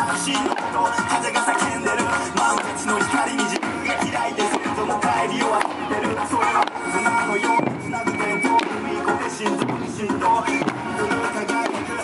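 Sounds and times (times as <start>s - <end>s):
drum dance music: 0.0s - 12.0s.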